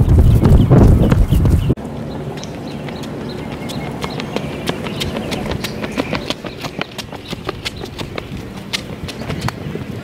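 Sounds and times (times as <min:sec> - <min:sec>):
footsteps of people running: 0:02.8 - 0:10.0.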